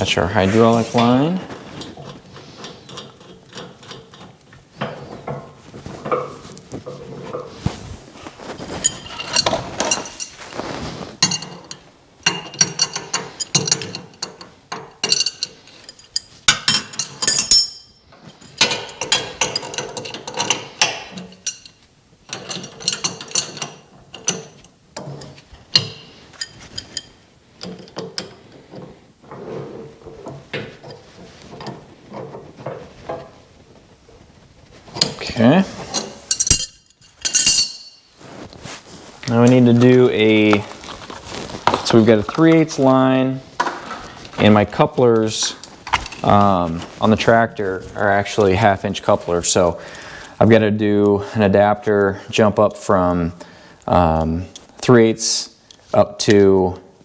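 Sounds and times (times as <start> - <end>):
wrenches clicking on metal fitting: 11.2 - 17.8, 18.5 - 28.4.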